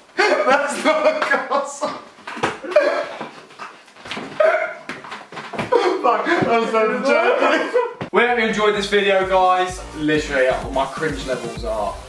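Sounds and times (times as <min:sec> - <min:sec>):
young man laughing hard: 0:00.1 - 0:03.3, 0:05.7 - 0:08.1.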